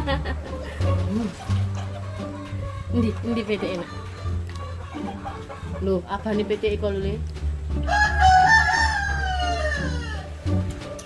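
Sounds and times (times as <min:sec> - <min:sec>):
rooster crowing: 0:07.8 - 0:10.4.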